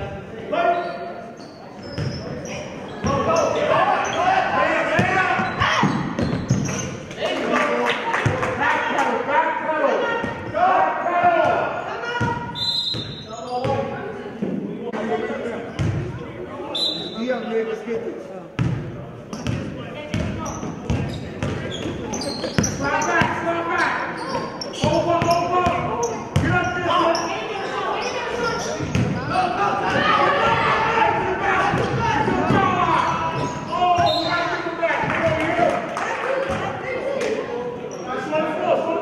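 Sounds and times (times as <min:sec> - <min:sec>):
players and spectators calling out: 0:00.0 - 0:18.6, 0:19.2 - 0:39.0
basketball bouncing on gym floor: 0:05.0 - 0:06.8, 0:18.6 - 0:23.4, 0:28.8 - 0:29.2.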